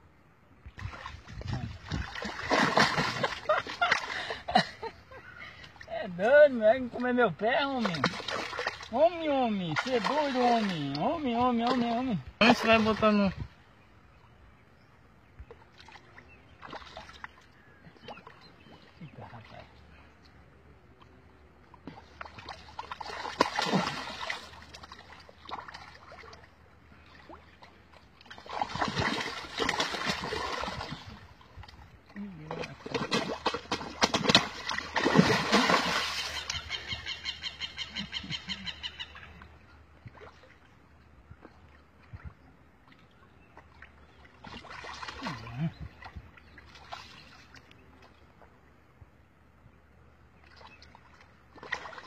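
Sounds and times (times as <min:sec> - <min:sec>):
water splashing: 0:00.7 - 0:13.5, 0:15.4 - 0:20.2, 0:21.0 - 0:48.6, 0:50.4 - 0:52.0
hand splashing water: 0:00.8 - 0:04.3, 0:21.8 - 0:26.5, 0:32.8 - 0:36.6.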